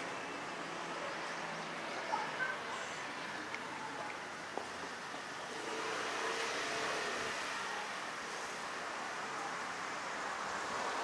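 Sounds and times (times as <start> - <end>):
distant traffic hiss: 0.0 - 11.0.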